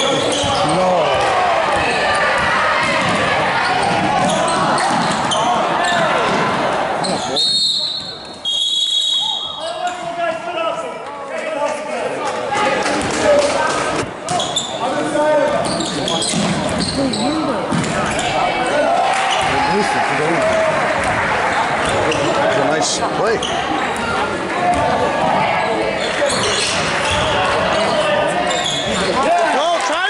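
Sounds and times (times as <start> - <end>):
crowd chatter and shouts: 0.0 - 30.0.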